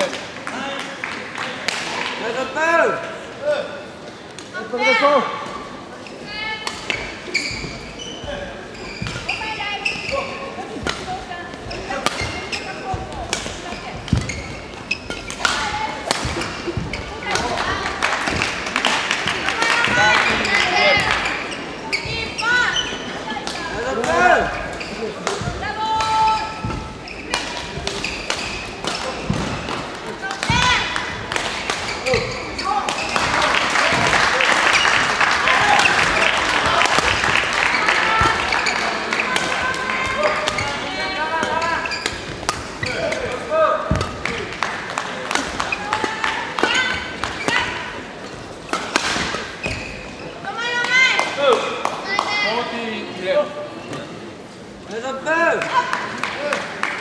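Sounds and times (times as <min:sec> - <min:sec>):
background din in hall: 0:00.0 - 0:57.0
racket hitting shuttlecock: 0:10.8 - 0:19.9, 0:25.2 - 0:34.8, 0:35.7 - 0:37.4, 0:39.4 - 0:40.8, 0:41.4 - 0:48.0, 0:48.7 - 0:49.8
players shouting: 0:32.1 - 0:42.0.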